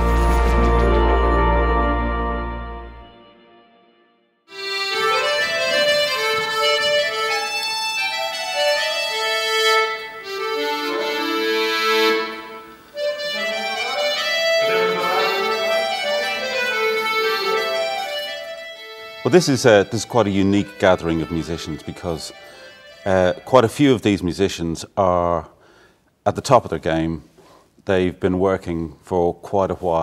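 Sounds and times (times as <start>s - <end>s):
accordion melody: 0.0s - 24.4s.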